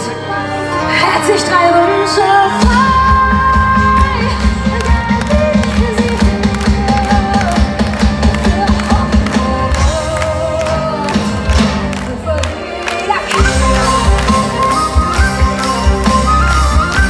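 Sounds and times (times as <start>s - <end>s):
melodic lead lines: 0.0s - 17.0s
folk metal band playing live: 0.8s - 12.5s, 13.2s - 17.0s
steady drumbeat: 2.6s - 12.2s.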